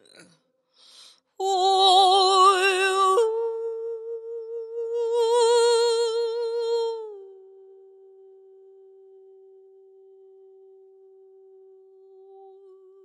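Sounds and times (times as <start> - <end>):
person humming a note: 1.4 - 8.0.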